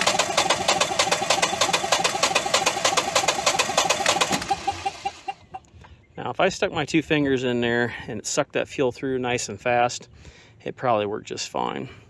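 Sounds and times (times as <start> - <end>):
generator engine cranking: 0.0 - 5.4.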